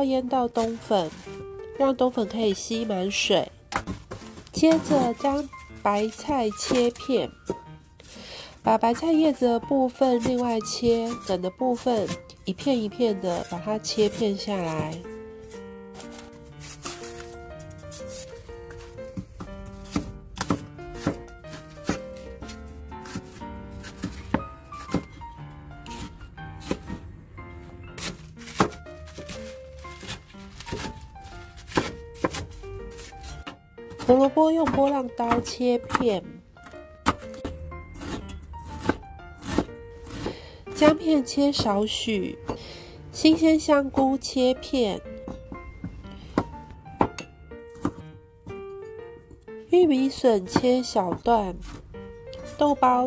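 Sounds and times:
background music: 0:00.0 - 0:53.0
knife striking cutting board: 0:19.8 - 0:25.2, 0:28.0 - 0:31.0, 0:31.6 - 0:36.1
knife slicing on cutting board: 0:28.0 - 0:31.0, 0:31.6 - 0:36.0, 0:37.1 - 0:40.3.

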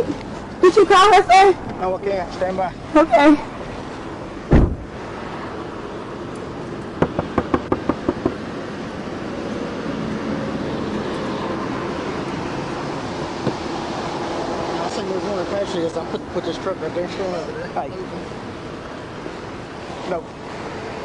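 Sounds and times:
idling vehicles and road noise: 0:00.0 - 0:21.0.

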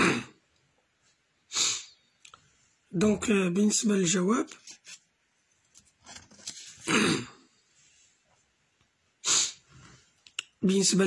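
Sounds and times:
person coughing: 0:00.0 - 0:00.4, 0:06.8 - 0:07.5
paper rustling: 0:04.4 - 0:06.9.

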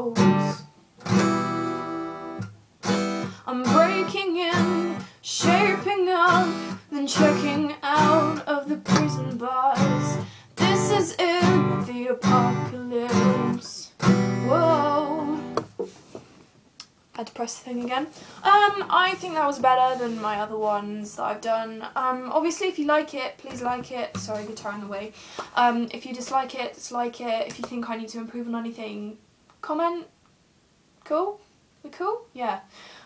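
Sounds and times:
acoustic guitar strumming: 0:00.0 - 0:15.9
soft handling knocks: 0:15.5 - 0:16.6.

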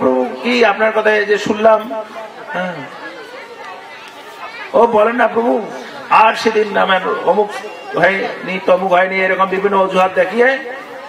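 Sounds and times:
low overlapping voices: 0:00.0 - 0:11.0.

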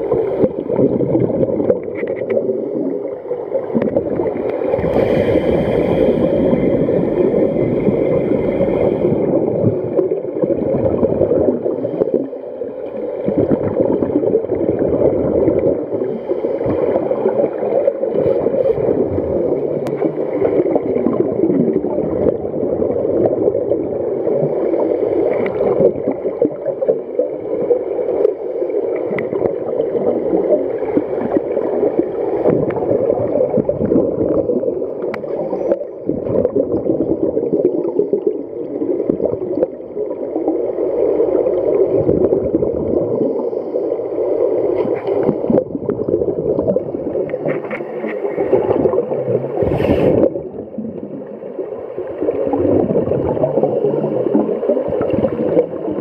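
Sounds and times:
underwater regulator bubbles: 0:00.0 - 0:56.0.

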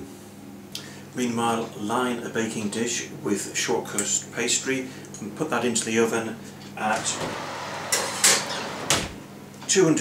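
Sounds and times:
oven door opening: 0:06.8 - 0:09.3.

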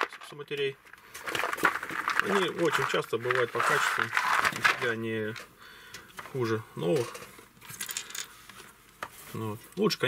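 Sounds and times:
capacitors clicking and rattling: 0:00.0 - 0:09.1.

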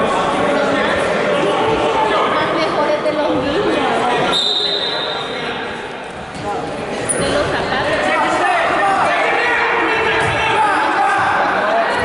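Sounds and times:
spectators talking and calling out: 0:00.0 - 0:12.0
referee's whistle blast: 0:04.3 - 0:05.2.

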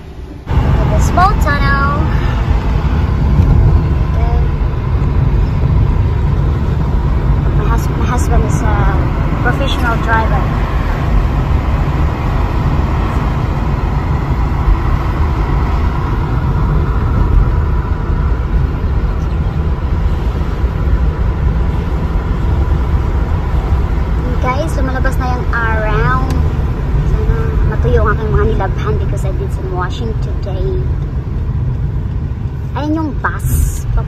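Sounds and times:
car road and engine rumble: 0:00.0 - 0:34.0.

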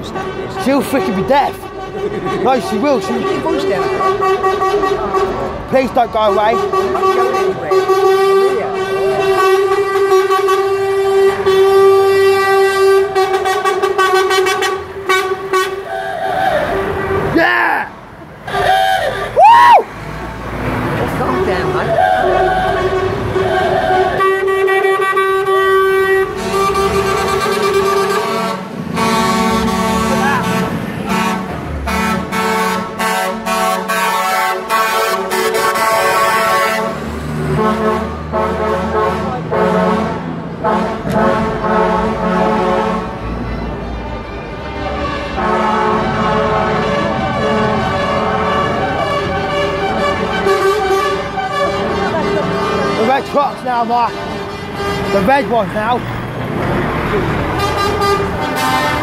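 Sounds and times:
lorry air horns: 0:00.0 - 0:05.5, 0:06.4 - 0:17.4, 0:18.5 - 0:19.4, 0:21.8 - 0:43.4, 0:44.6 - 0:53.2, 0:54.1 - 0:55.4, 0:57.5 - 0:59.0
diesel engines running: 0:00.0 - 0:59.0.

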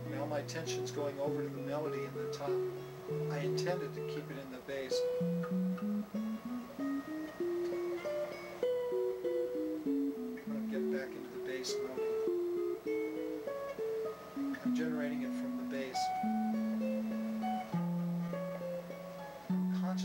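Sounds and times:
electric guitar played fingerstyle: 0:00.0 - 0:20.0.

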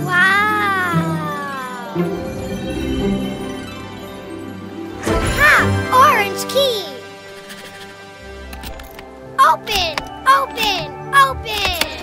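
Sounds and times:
cartoon character high call: 0:00.0 - 0:02.0
background music: 0:00.0 - 0:12.0.

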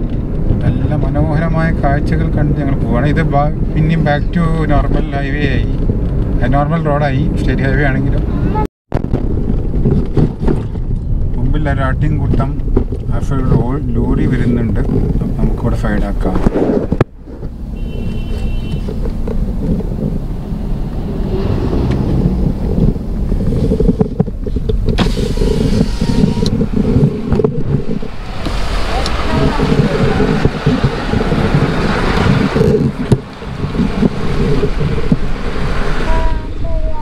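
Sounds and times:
engine and tyre rumble: 0:00.0 - 0:37.0
road and wind noise: 0:00.0 - 0:37.0.

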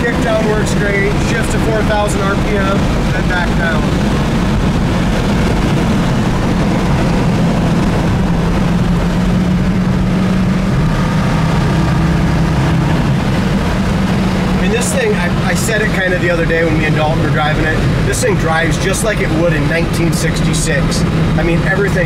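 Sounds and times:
car engine drone: 0:00.0 - 0:22.0
road noise: 0:00.0 - 0:22.0.

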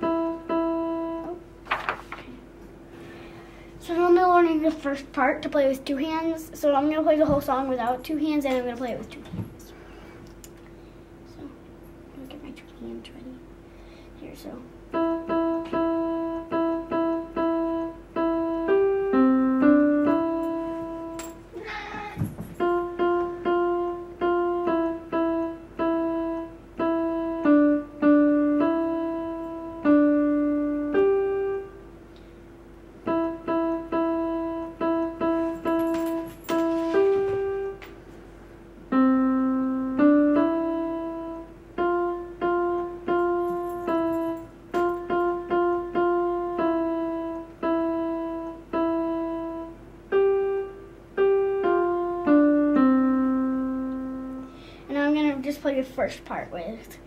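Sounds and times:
electronic keyboard piano tune: 0:00.0 - 0:01.6, 0:14.8 - 0:21.5, 0:22.5 - 0:31.9, 0:33.0 - 0:37.9, 0:38.9 - 0:55.0.

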